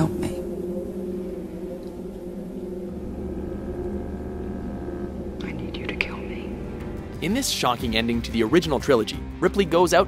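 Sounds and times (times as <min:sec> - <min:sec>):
faint higher tone: 0:00.0 - 0:07.2
low steady drone: 0:00.0 - 0:09.0.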